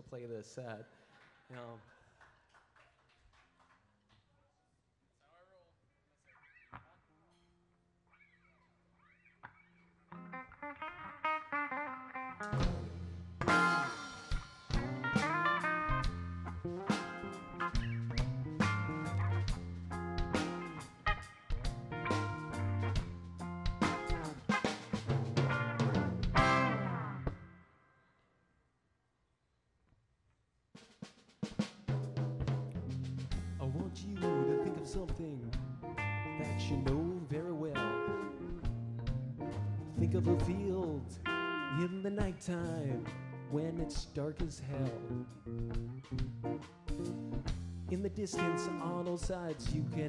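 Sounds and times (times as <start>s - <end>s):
electric guitar picking: 9.0s - 27.5s, 33.5s - 43.9s, 44.7s - 50.0s
rock band playing: 10.1s - 27.4s, 32.0s - 50.0s
rock drum kit hits: 12.4s - 27.3s.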